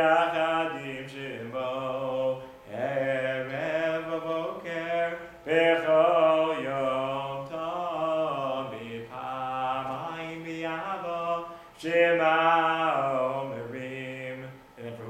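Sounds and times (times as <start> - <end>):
man singing unaccompanied: 0.0 - 15.0.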